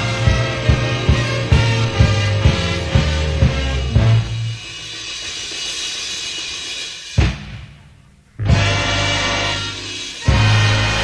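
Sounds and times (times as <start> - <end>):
jazz big band playing: 0.0 - 4.9, 8.4 - 11.0
drums: 0.0 - 11.0.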